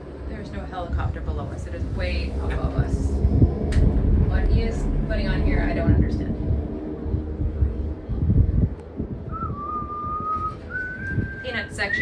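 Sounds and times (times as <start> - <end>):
low rumble of gondola cabin: 0.0 - 12.0
person whistling long notes: 9.3 - 12.0.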